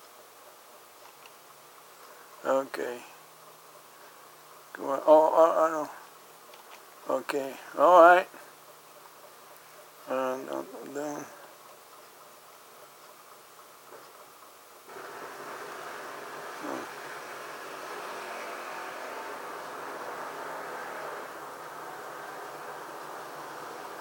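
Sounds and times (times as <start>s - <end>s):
steady machine-like rushing noise: 14.9s - 24.0s.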